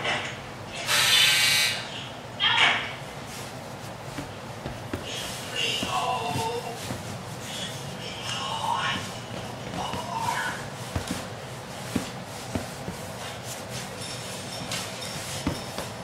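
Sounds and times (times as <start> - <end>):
dog thumping and scuffling: 3.8 - 7.4, 8.8 - 16.0.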